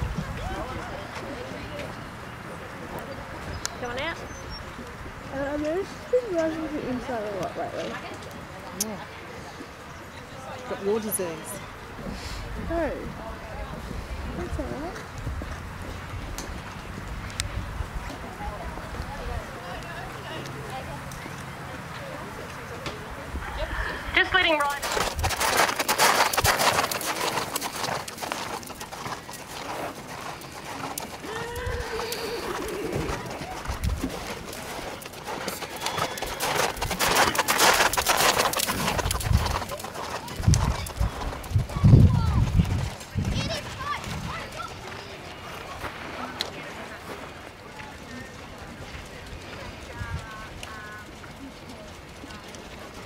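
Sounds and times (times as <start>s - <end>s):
horse hoofbeats on sand: 24.2s - 46.0s.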